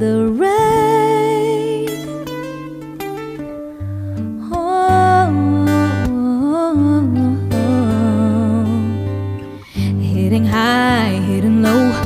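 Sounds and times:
woman singing: 0.0s - 2.9s, 4.1s - 12.0s.

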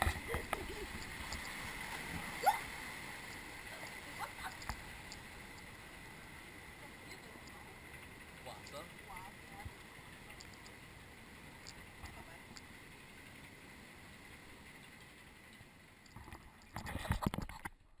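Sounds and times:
faint water and ride ambience: 0.0s - 17.9s
light ticks: 4.2s - 5.8s, 7.1s - 8.1s, 8.7s - 10.8s, 11.6s - 12.8s.

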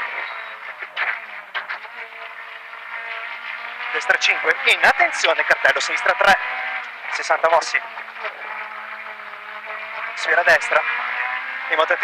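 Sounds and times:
rally car engine from inside: 0.0s - 12.0s.

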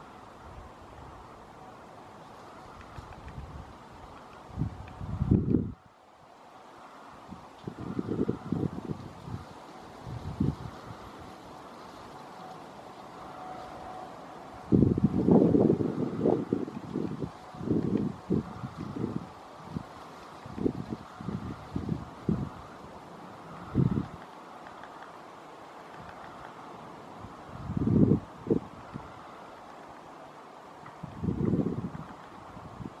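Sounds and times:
faint steady hiss: 0.0s - 33.0s
wind buffeting microphone: 2.4s - 5.9s, 6.9s - 12.3s, 13.2s - 25.0s, 25.8s - 29.7s, 30.8s - 33.0s.

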